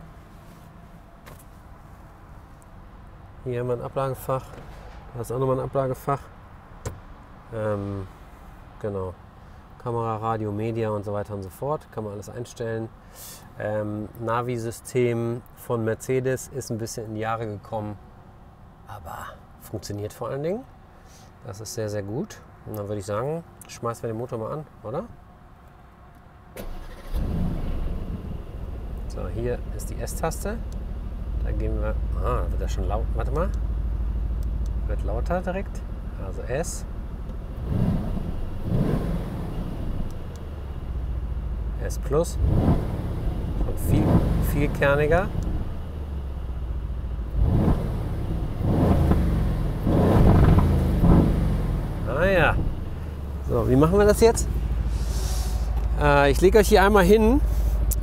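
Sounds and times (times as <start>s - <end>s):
car engine starting and idling: 26.5s - 58.0s.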